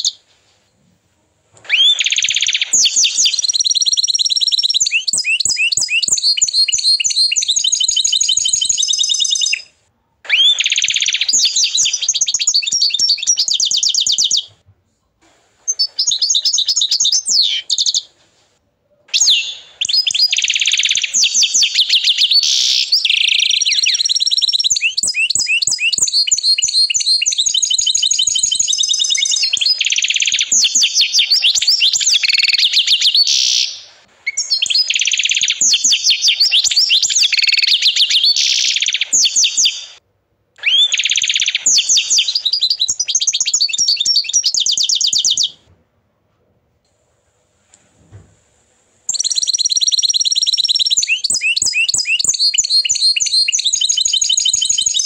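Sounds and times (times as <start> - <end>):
canary singing trills: 1.6 - 14.6, 15.7 - 18.2, 19.1 - 40.0, 40.6 - 45.6, 49.1 - 55.0.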